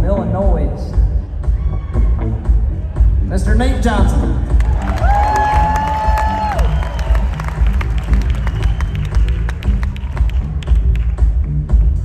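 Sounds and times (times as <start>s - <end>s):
crowd cheering and clapping: 4.5s - 11.5s.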